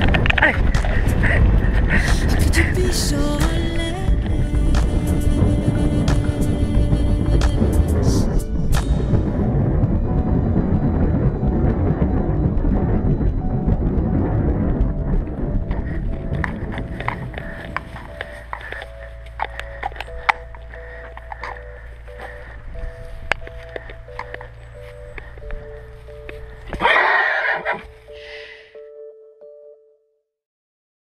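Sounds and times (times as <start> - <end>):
music: 0.0 - 30.2
horse hooves clopping on pavement: 15.7 - 25.6
horse whinnying: 26.8 - 27.9.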